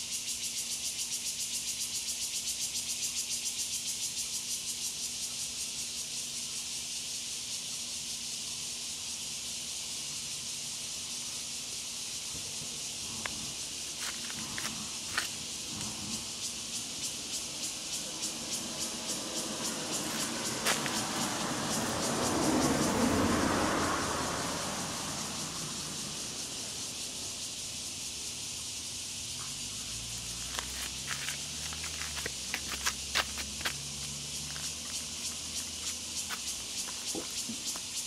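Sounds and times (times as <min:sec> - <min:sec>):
vehicle passing: 0:13.0 - 0:37.7
low engine hum: 0:13.0 - 0:37.9
high hiss with fine ticking: 0:24.2 - 0:33.1.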